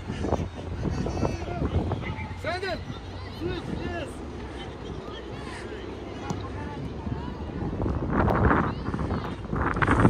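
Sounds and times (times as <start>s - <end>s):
wind rumble on microphone: 0.0s - 5.5s, 6.3s - 10.0s.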